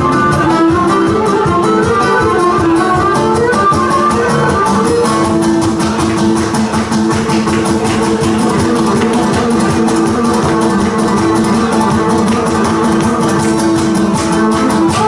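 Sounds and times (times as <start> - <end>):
strummed plucked strings: 0.0 - 15.0.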